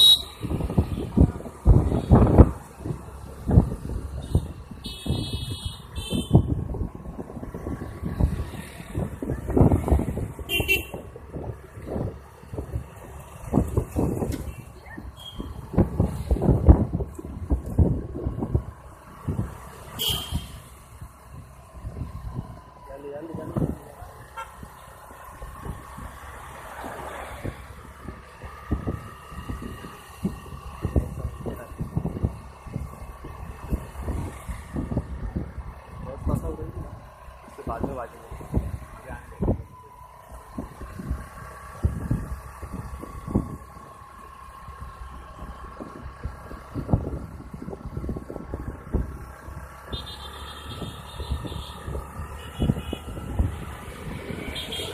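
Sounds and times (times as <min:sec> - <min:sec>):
wind buffeting microphone: 0:00.0 - 0:19.7, 0:20.4 - 0:26.3, 0:27.2 - 0:50.0, 0:50.7 - 0:54.9
road traffic noise: 0:00.0 - 0:54.9
pulsed horn toot: 0:49.9 - 0:53.2, 0:54.5 - 0:54.9.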